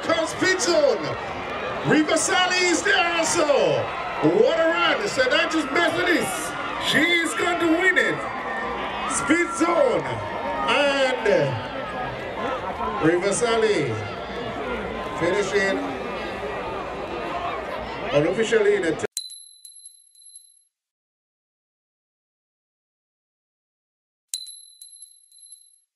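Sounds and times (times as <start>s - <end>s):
man commentating: 0.0s - 1.2s, 1.8s - 8.4s, 9.0s - 11.7s, 13.0s - 14.2s.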